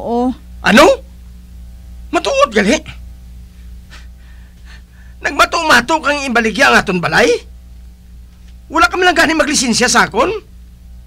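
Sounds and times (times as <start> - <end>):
person gasping: 3.9 - 5.2.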